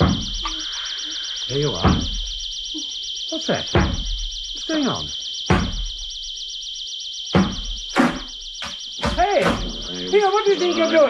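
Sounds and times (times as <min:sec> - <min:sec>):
heavy thuds: 0:00.0 - 0:00.7, 0:01.6 - 0:02.6, 0:03.7 - 0:04.6, 0:05.4 - 0:06.3, 0:07.3 - 0:10.1.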